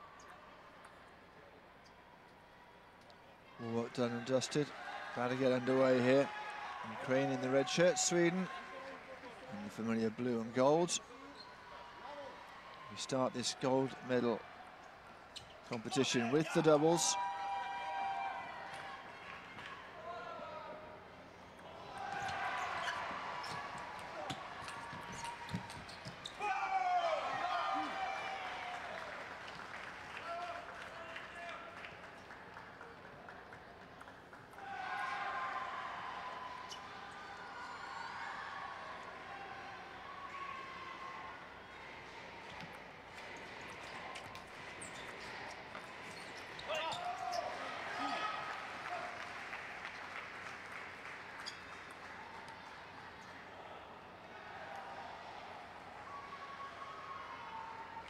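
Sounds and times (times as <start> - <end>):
people shouting and cheering: 26.2 - 29.2, 46.7 - 49.2.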